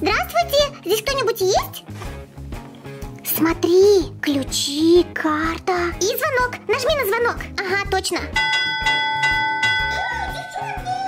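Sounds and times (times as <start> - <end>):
background music with beat: 1.7 - 11.0
service bell ding: 8.4 - 10.8.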